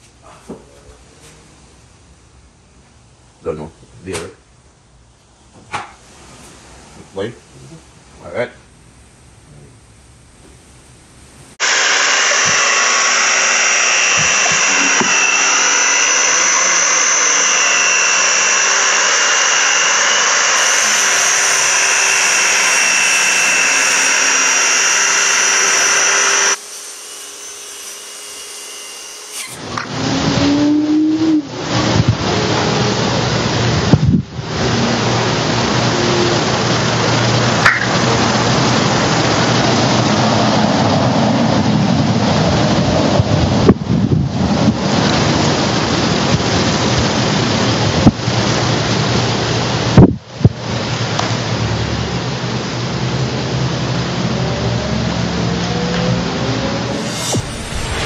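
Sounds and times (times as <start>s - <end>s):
circular saw whine: 11.5s - 43.7s, 52.9s - 58.0s
loud even rushing noise: 56.3s - 58.0s.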